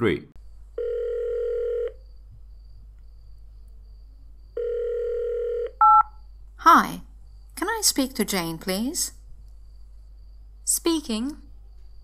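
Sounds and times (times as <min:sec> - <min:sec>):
telephone ringing tone: 0:00.8 - 0:02.0, 0:04.6 - 0:06.1.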